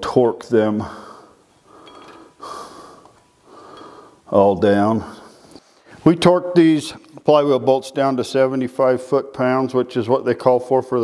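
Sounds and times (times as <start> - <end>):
person breathing in: 0.8 - 4.3
person speaking: 4.3 - 5.3, 5.9 - 11.0.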